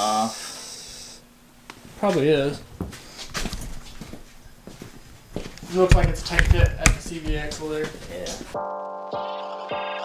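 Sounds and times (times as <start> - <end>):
footsteps on concrete floor: 1.8 - 8.6.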